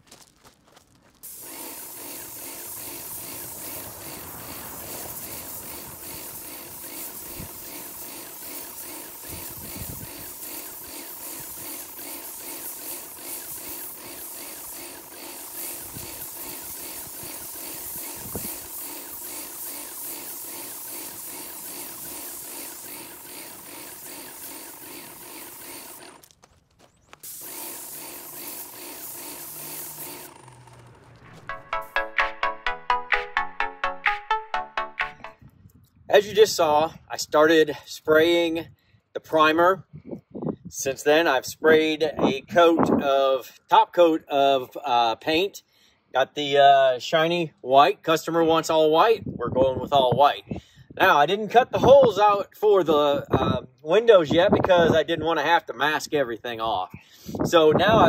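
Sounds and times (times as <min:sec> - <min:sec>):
paint sprayer hissing and pulsing: 0:01.2 - 0:32.5.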